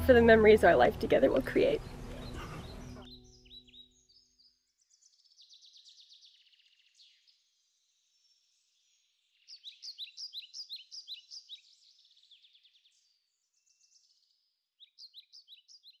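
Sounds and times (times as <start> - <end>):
bird chirping: 0.6 - 16.0.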